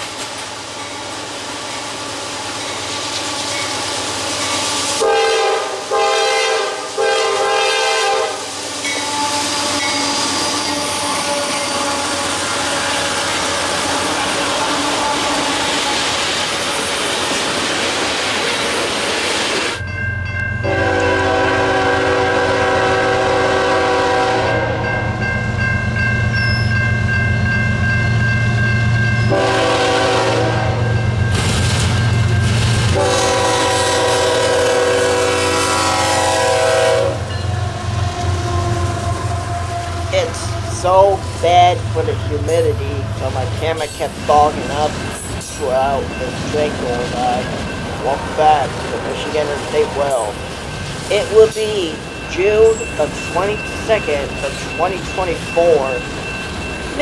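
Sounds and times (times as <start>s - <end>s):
train wheels rumbling on rail: 0.0s - 57.0s
locomotive horn blasts: 5.0s - 16.0s, 20.6s - 25.2s, 29.3s - 31.0s, 32.9s - 40.8s
locomotive horn long chord: 5.0s - 16.1s, 20.6s - 25.2s, 29.3s - 31.0s, 32.9s - 41.0s.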